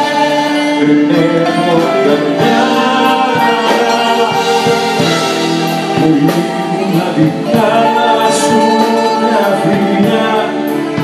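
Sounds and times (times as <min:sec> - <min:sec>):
bouzouki violin and drums band: 0:00.0 - 0:11.0
man singing: 0:00.0 - 0:11.0.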